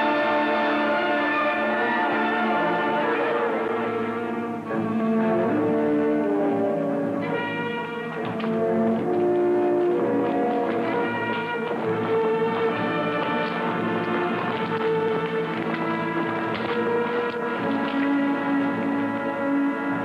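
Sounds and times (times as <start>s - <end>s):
orchestral music with brass chords: 0.0s - 20.0s.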